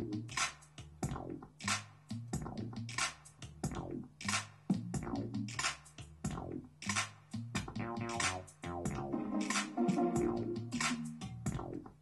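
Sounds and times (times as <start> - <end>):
hip-hop drum machine beat: 0.0 - 12.0
synth notes: 8.9 - 11.3.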